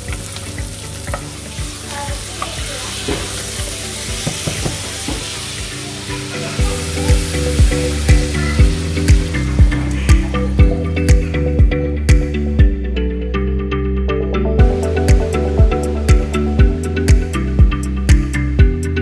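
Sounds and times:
food sizzling in oil: 0.0s - 10.6s
background music with steady beat: 0.0s - 19.0s.

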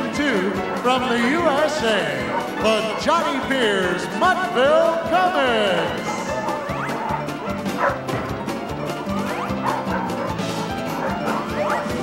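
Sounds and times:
music with bouncing bass line: 0.0s - 12.0s
dogs barking: 0.2s - 4.3s, 5.5s - 12.0s.

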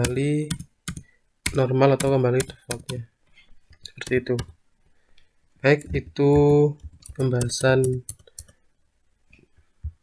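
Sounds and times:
person speaking: 0.0s - 4.6s, 5.6s - 8.6s.

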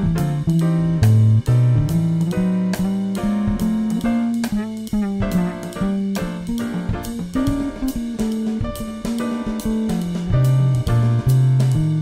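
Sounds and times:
drums: 0.0s - 12.0s
electric bass guitar jazz line: 0.0s - 12.0s
keyboard backing: 0.0s - 12.0s.

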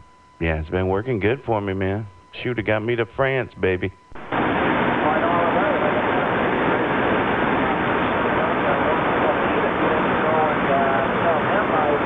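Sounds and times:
radio static: 0.0s - 12.0s.

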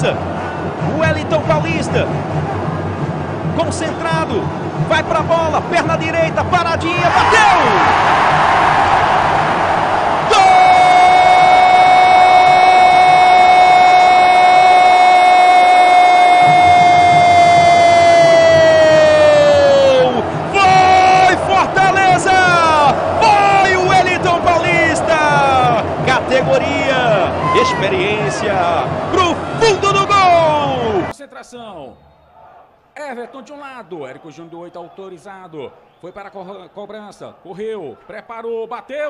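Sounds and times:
stadium crowd noise: 0.0s - 39.0s
excited shouted commentary: 3.7s - 8.8s, 10.2s - 31.8s
commentator goal shout: 6.9s - 7.9s, 10.3s - 31.1s.

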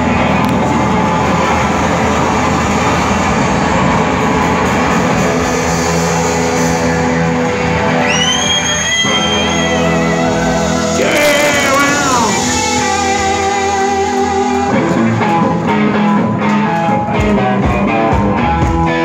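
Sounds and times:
electric guitar: 0.0s - 19.0s
live rock band playing: 0.0s - 19.0s.

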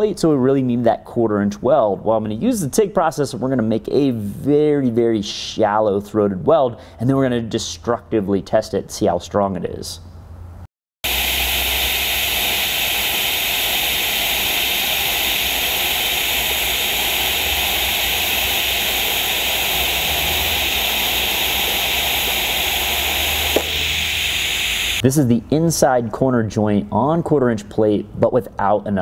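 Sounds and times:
welding arc hiss: 11.0s - 25.0s
low hum: 11.1s - 25.0s.

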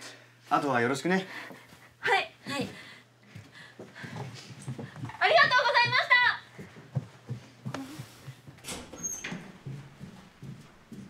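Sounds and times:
footsteps on corridor floor: 1.4s - 11.0s.

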